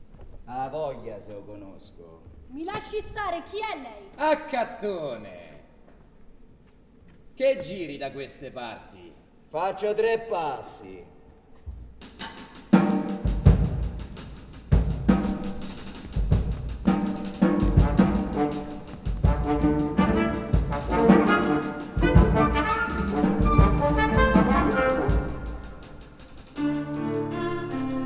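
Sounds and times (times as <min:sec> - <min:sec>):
timpani and drum strokes: 0:11.8 - 0:28.0
brass chords: 0:12.7 - 0:28.0.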